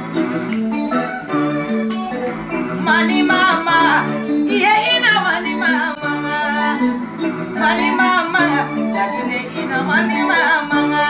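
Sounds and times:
instrumental music: 0:00.0 - 0:11.0
woman singing: 0:02.8 - 0:11.0.

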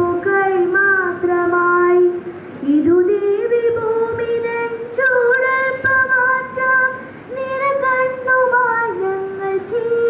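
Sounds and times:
girl singing into a microphone: 0:00.0 - 0:10.0.

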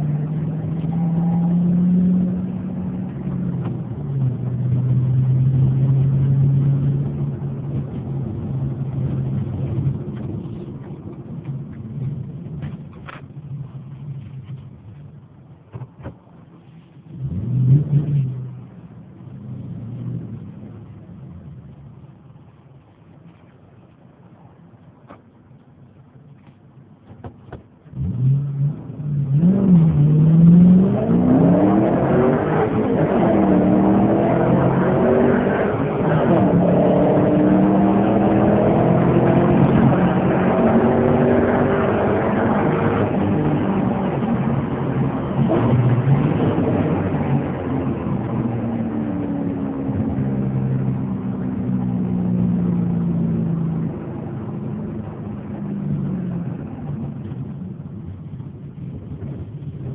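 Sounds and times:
car engine accelerating: 0:00.0 - 0:26.1, 0:27.5 - 0:59.9.

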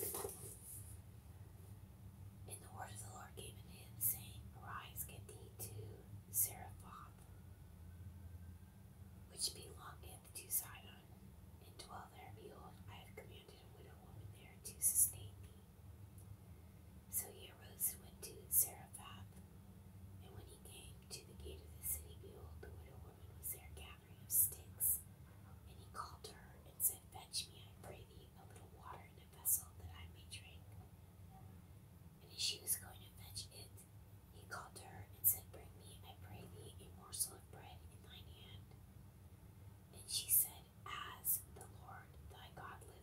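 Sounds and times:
faint low hum: 0:00.0 - 0:43.0
person whispering: 0:02.5 - 0:07.2, 0:09.3 - 0:11.0, 0:11.6 - 0:15.7, 0:17.1 - 0:19.3, 0:20.2 - 0:25.0, 0:25.7 - 0:30.6, 0:32.2 - 0:33.8, 0:34.4 - 0:38.6, 0:40.0 - 0:43.0.

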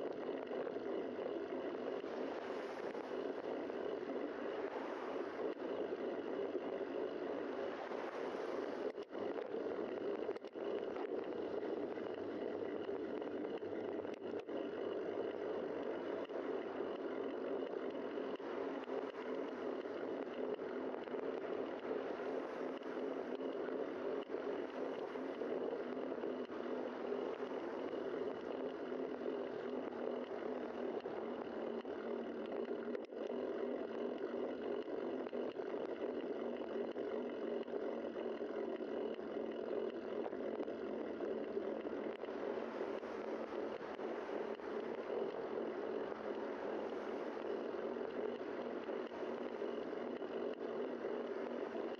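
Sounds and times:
wind over microphone: 0:00.0 - 0:34.2, 0:40.0 - 0:51.9.

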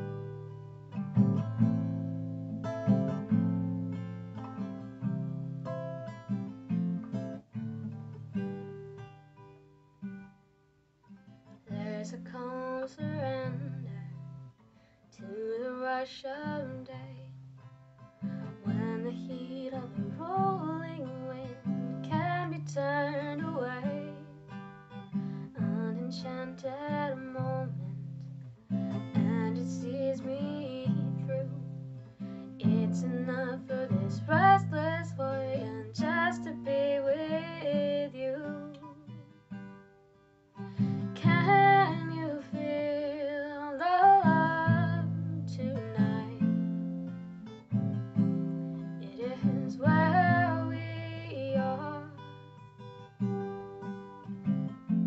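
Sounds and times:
strummed acoustic guitar: 0:00.0 - 0:55.0
woman singing a ballad: 0:11.7 - 0:14.2, 0:15.2 - 0:17.4, 0:18.4 - 0:24.4, 0:25.5 - 0:28.1, 0:29.1 - 0:31.7, 0:32.6 - 0:39.0, 0:40.8 - 0:46.5, 0:48.8 - 0:52.3.

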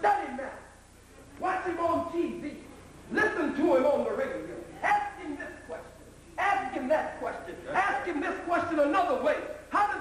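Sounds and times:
man speaking: 0:00.0 - 0:00.8, 0:01.4 - 0:10.0.

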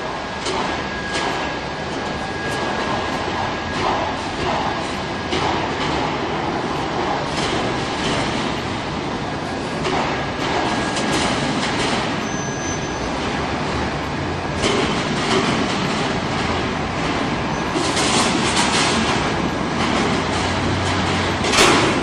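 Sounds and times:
factory machinery rumble and rattle: 0:00.0 - 0:22.0
machinery clacks: 0:00.0 - 0:22.0.

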